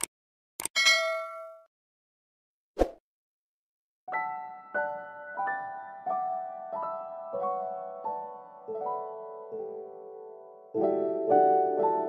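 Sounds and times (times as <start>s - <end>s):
mouse clicks: 0.0s - 0.7s
bright bell ding: 0.8s - 1.7s.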